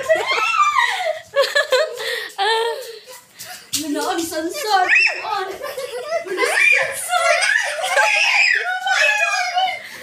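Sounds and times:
children screaming in play: 0.0s - 1.2s, 4.6s - 10.0s.

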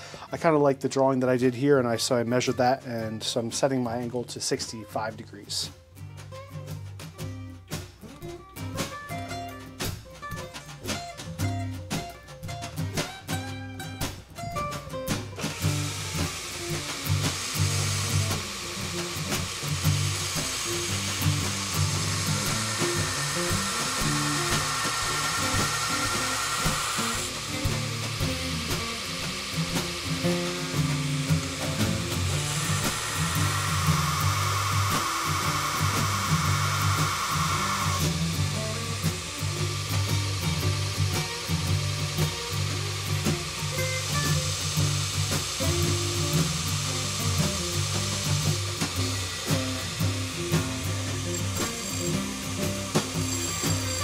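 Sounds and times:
background music: 0.0s - 54.0s
belt grinder grinding steel: 15.4s - 54.0s.

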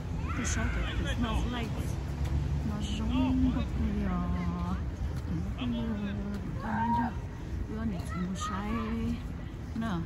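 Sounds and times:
people talking: 2.6s - 10.0s.

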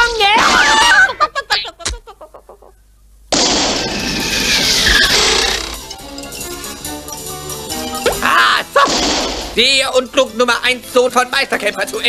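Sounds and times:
musical notes: 5.7s - 8.8s.

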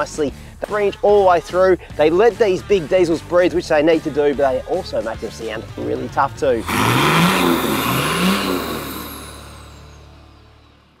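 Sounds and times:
diesel engine idling: 6.6s - 10.3s.

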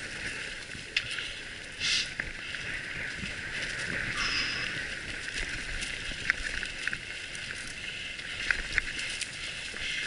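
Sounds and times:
bicycle clicks and rattles: 0.0s - 10.0s
bicycles rolling over dirt and leaves: 0.0s - 10.0s.

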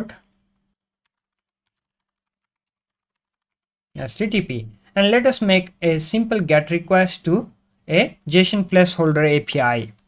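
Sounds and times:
computer keyboard typing: 0.2s - 3.7s.

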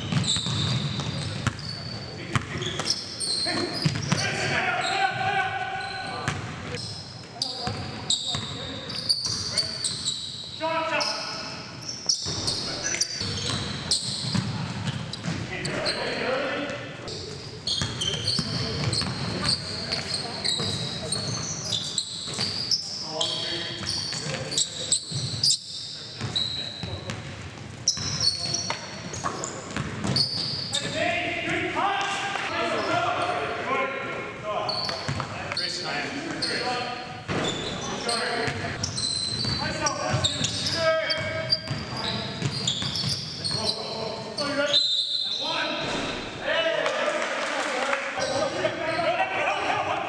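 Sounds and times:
basketball bouncing on wooden floor: 0.0s - 1.7s, 3.8s - 4.1s
sneaker squeaks: 0.0s - 31.6s, 34.6s - 46.4s, 48.2s - 49.2s
players calling out: 0.2s - 26.9s, 48.2s - 50.0s.

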